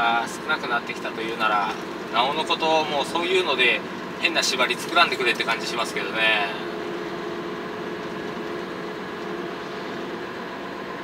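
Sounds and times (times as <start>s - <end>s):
truck engine and road noise: 0.0s - 11.0s
low hum: 0.7s - 11.0s.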